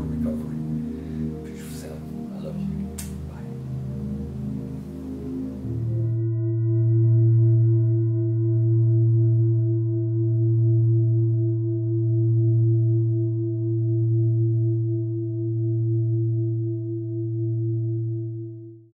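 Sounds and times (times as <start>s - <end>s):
low meditative drone: 0.0s - 18.5s.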